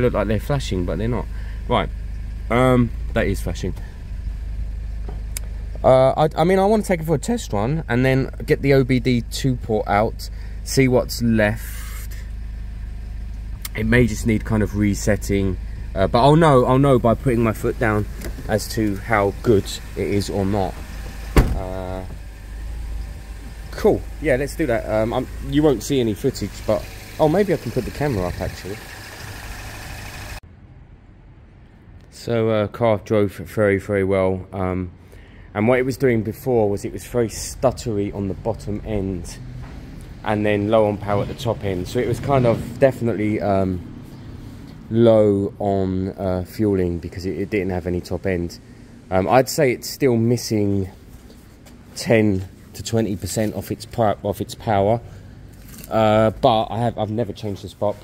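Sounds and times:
car engine idling: 0.0s - 30.4s, 35.1s - 44.7s, 45.6s - 58.0s
person speaking: 13.6s - 22.2s, 23.6s - 28.9s, 55.8s - 58.0s.

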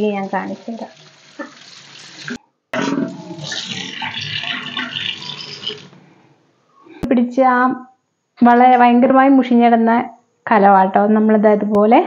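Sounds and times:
tap water splashing into pot: 1.1s - 2.4s.

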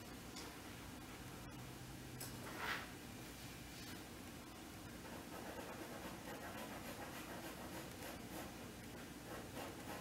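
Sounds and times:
drawing stick scratching on paper: 5.0s - 10.0s.

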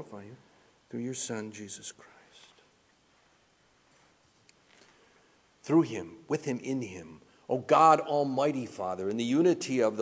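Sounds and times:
faint breathy hiss: 0.0s - 8.2s.

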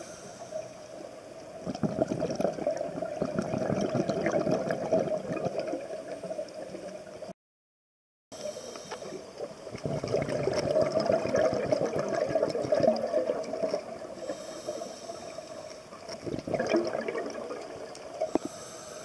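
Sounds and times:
underwater bubbling: 0.0s - 7.3s, 8.4s - 19.0s.

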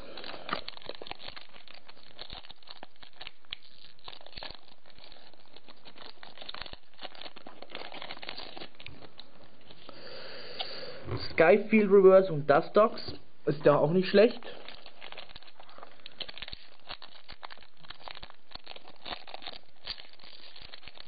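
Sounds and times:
cards rustling and clicking: 0.0s - 10.0s, 11.6s - 21.0s
foil wrapper crinkling and tearing: 0.0s - 21.0s.

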